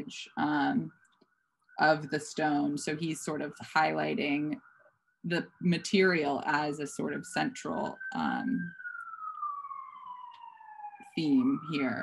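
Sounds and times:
people talking: 0:00.0 - 0:00.9, 0:01.8 - 0:04.6, 0:05.3 - 0:08.7, 0:11.2 - 0:12.0
wailing siren: 0:00.0 - 0:12.0.

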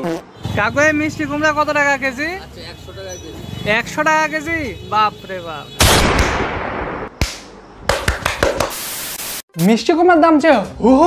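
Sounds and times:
loud blast: 0:05.8 - 0:07.2
sharp crack: 0:05.8 - 0:08.8.

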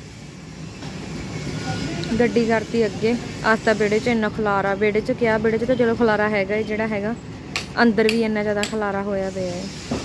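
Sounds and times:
vehicle noise: 0:00.0 - 0:10.0.

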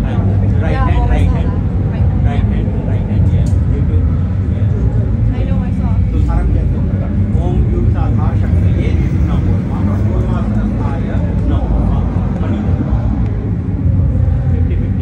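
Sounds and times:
low rumble: 0:00.0 - 0:15.0.

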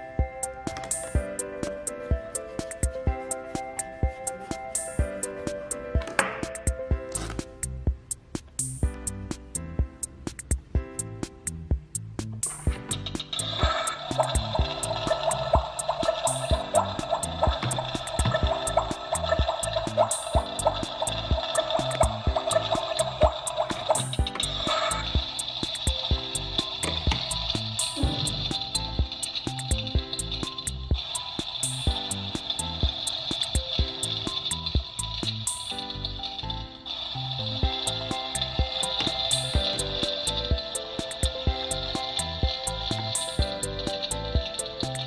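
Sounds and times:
toy stove electronic cooking sound: 0:00.0 - 0:10.6, 0:12.0 - 0:45.0
background music with steady beat: 0:00.0 - 0:45.0.

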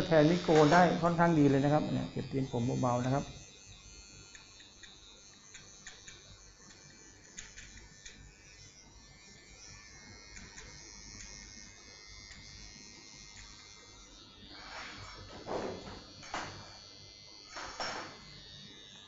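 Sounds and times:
electric hair trimmer buzzing: 0:00.0 - 0:19.0.

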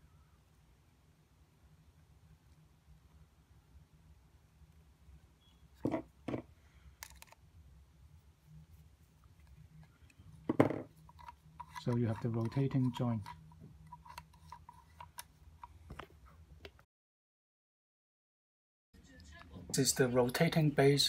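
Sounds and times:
low room hum: 0:00.0 - 0:16.9.

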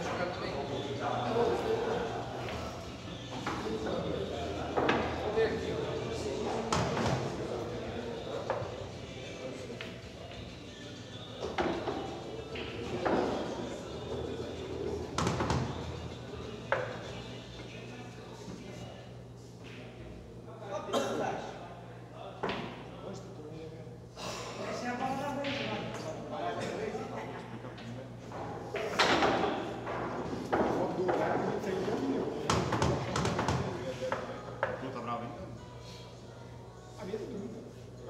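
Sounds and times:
murmured talk: 0:00.0 - 0:38.0.

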